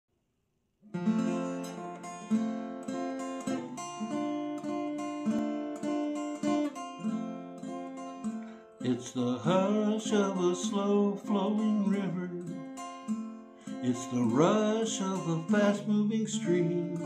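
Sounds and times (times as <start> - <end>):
acoustic guitar chords: 0.8 - 17.0.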